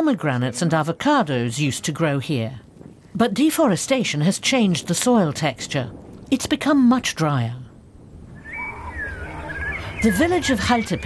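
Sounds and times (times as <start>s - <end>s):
low rumble: 5.6s - 11.0s
whistled animal calls: 8.3s - 11.0s.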